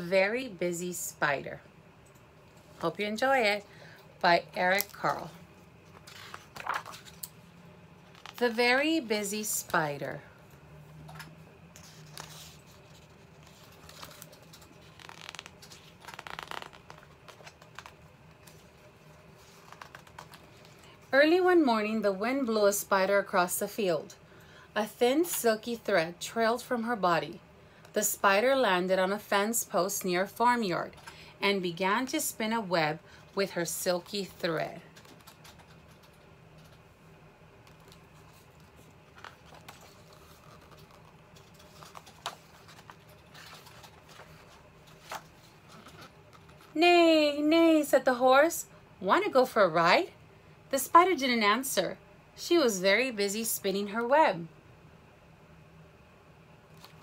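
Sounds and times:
book pages rustling: 4.6 - 7.4, 11.7 - 21.0, 34.9 - 36.9, 37.6 - 46.8, 56.7 - 57.0.

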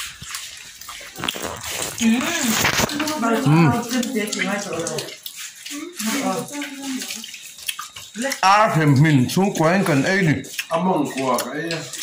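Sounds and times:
running water splashing: 0.0 - 12.0
people talking: 2.0 - 7.3, 8.2 - 12.0.

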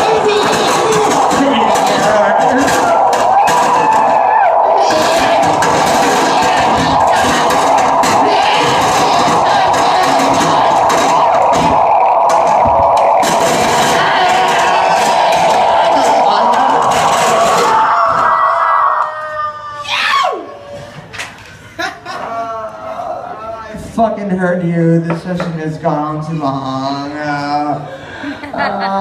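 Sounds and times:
harsh noise music: 0.0 - 19.1
falling pitch sweep: 0.0 - 19.8.

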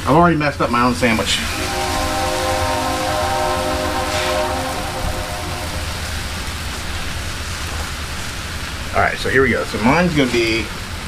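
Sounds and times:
steady pitched drone: 1.4 - 7.3.

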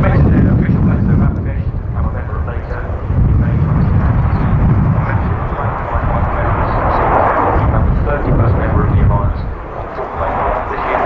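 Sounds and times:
jet engine roar overhead: 0.0 - 11.0.

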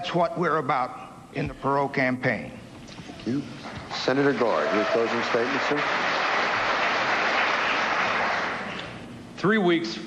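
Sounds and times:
audience applauding: 3.9 - 8.8.

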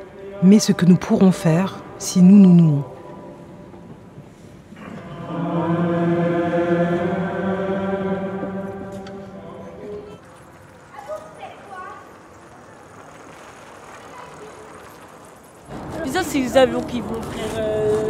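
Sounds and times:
voices chanting a held note: 4.8 - 10.3.

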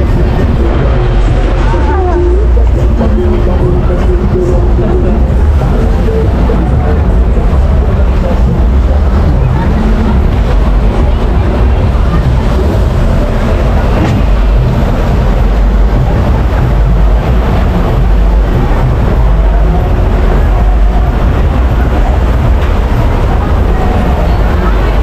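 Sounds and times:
fairground noise: 0.0 - 25.0
rumble of moving water and machinery: 0.0 - 25.0.

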